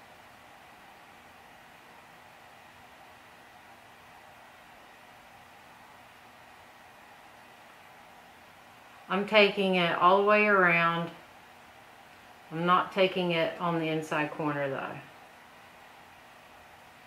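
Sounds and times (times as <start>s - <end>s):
faint steady hum: 0.0s - 17.0s
room tone hiss: 0.0s - 17.0s.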